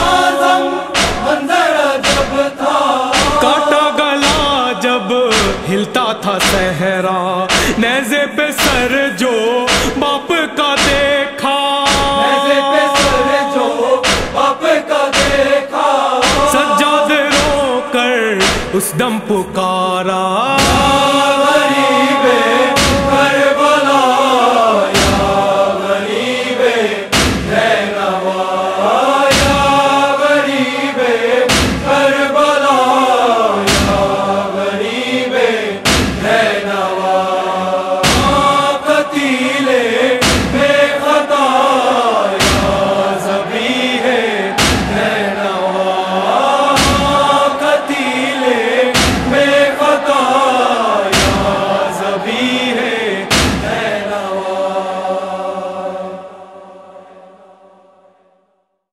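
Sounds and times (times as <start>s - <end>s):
voices chanting mournful refrain: 0.0s - 6.8s, 7.4s - 58.4s
rhythmic thuds: 0.0s - 9.0s, 9.7s - 19.1s, 20.5s - 26.4s, 27.1s - 28.0s, 29.2s - 30.4s, 31.4s - 32.4s, 33.6s - 34.7s, 35.8s - 36.7s, 38.0s - 39.0s, 40.2s - 41.1s, 42.3s - 45.5s, 46.5s - 47.9s, 48.9s - 54.2s.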